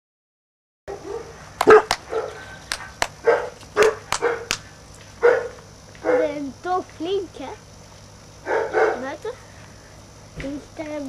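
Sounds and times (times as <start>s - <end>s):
puppy barking: 0.9s - 4.6s, 5.2s - 6.4s, 8.4s - 9.1s.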